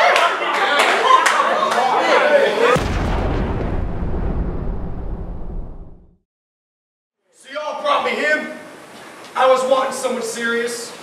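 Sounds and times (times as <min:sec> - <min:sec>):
crowd shouting and reacting: 0:00.0 - 0:02.9
deep low rumbling boom: 0:02.8 - 0:06.2.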